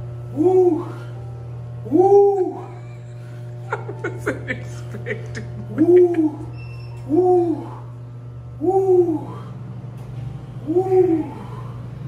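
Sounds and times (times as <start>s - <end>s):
man exhaling hoo sounds: 0.3s - 1.2s, 8.6s - 9.7s.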